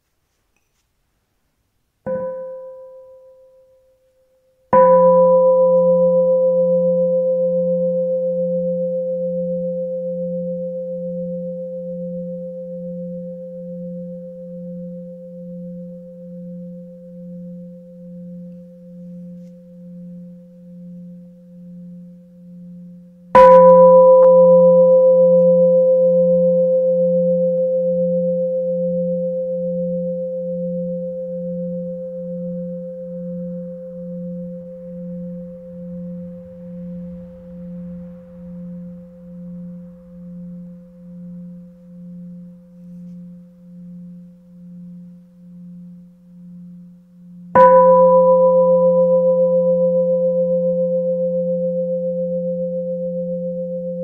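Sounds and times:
meditation bell ringing: 2.1s - 4.0s, 4.7s - 54.0s
steady wavering hum: 2.1s - 54.0s.

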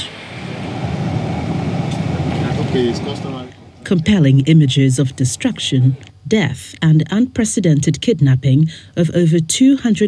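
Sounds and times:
vehicle engine rumble: 0.0s - 3.8s.

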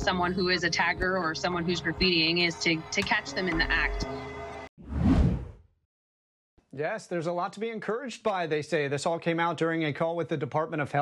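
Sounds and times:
whoosh transition effect: 4.8s - 5.6s.

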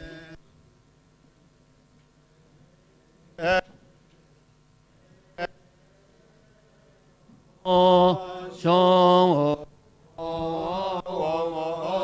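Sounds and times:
man chanting a hymn: 0.0s - 0.4s, 3.4s - 3.8s, 7.6s - 12.0s.

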